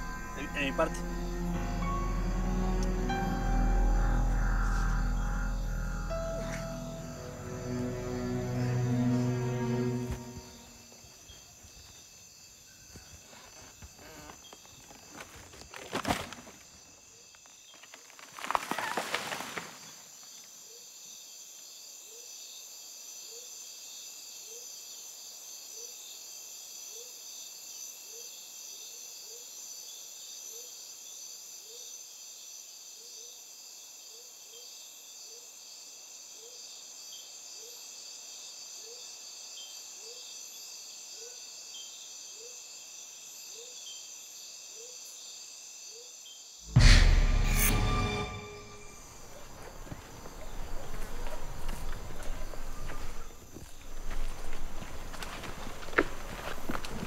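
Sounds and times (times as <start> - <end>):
crickets and insects chorus: 0.0 - 46.8, 48.4 - 57.0
rough loud noise: 46.7 - 49.0
sharp noise: 46.7 - 49.2.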